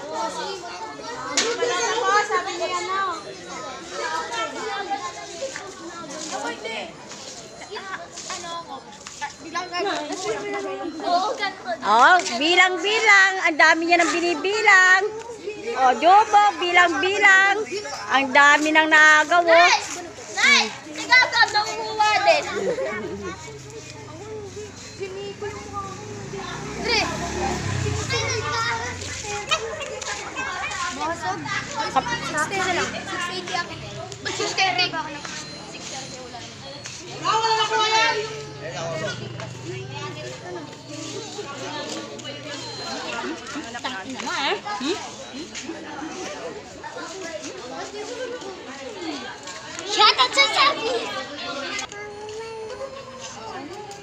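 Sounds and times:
background chatter: 0:00.0 - 0:54.0
children talking and calling out: 0:00.0 - 0:54.0.

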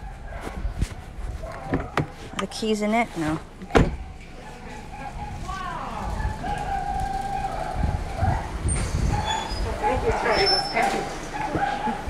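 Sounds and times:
low rumbling handling noise: 0:00.0 - 0:12.0
dogs whimpering and whining: 0:06.1 - 0:12.0.

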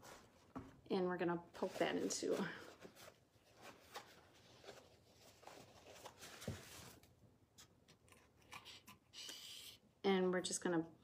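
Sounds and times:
paper rustling and crinkling: 0:01.6 - 0:07.2.

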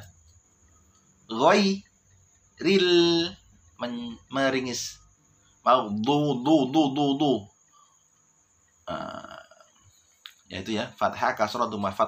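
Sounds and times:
man speaking: 0:01.3 - 0:01.9, 0:02.6 - 0:07.5, 0:08.9 - 0:09.7, 0:10.5 - 0:12.0.

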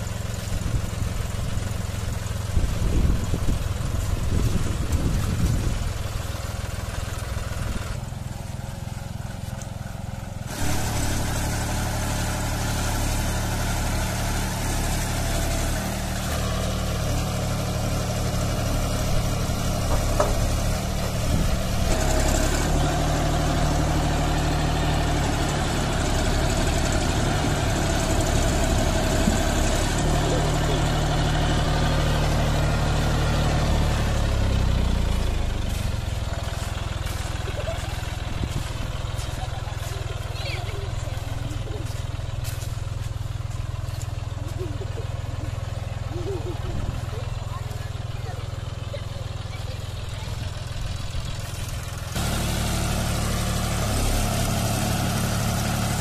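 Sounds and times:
tractor diesel engine under load: 0:00.0 - 0:56.0.

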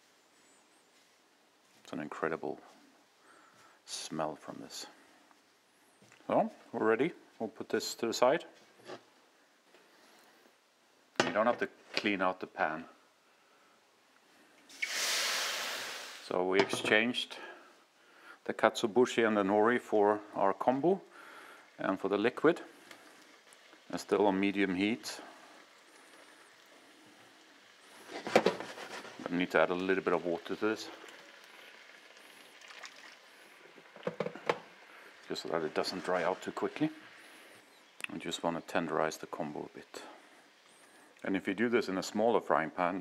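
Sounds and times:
liquid sizzling in hot pan: 0:14.7 - 0:16.3, 0:22.7 - 0:37.7.

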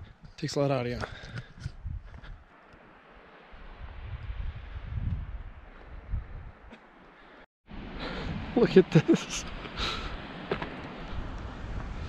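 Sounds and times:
wind buffeting microphone: 0:00.0 - 0:02.5, 0:03.6 - 0:06.8, 0:09.4 - 0:12.0.

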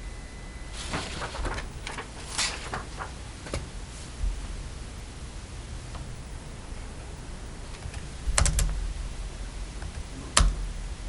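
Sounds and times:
low room hum: 0:00.0 - 0:11.0
laptop keystroke clicks: 0:07.8 - 0:08.8, 0:09.8 - 0:10.8.

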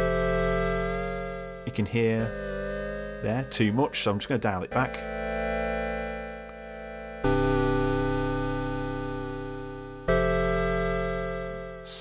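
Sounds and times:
synth pad chords: 0:00.0 - 0:12.0.

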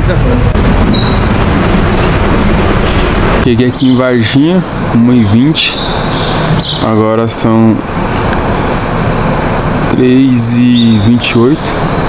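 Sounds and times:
bus engine and road rumble: 0:00.0 - 0:12.0.

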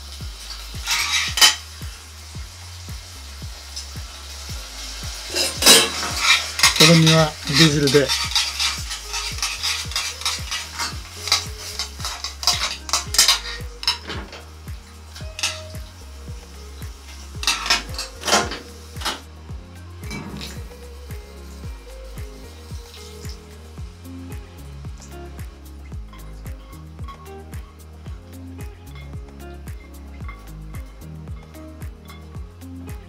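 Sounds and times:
light sizzle from pan: 0:00.0 - 0:33.0
soft background music: 0:00.0 - 0:33.0
metal tongs scraping frying pan: 0:00.5 - 0:01.8, 0:03.7 - 0:19.3.

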